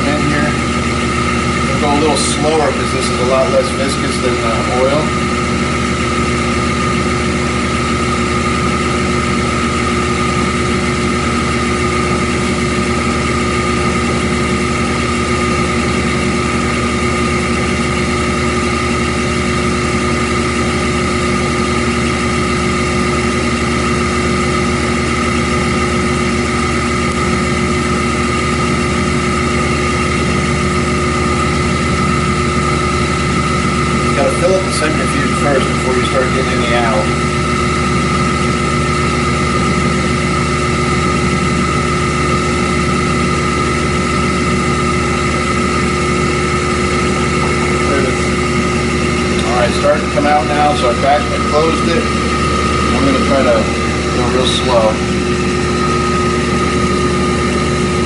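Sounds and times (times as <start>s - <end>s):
centrifuge spinning whine: 0.0s - 58.0s.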